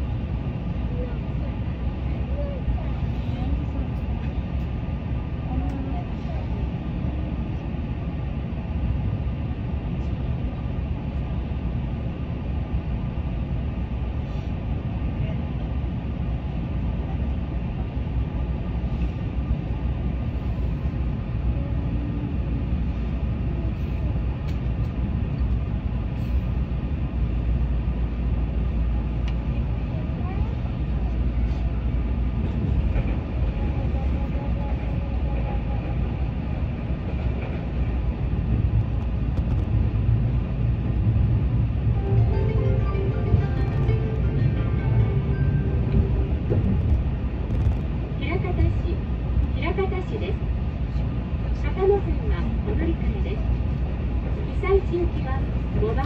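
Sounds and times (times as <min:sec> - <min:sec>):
electric train rumbling: 0:00.0 - 0:56.0.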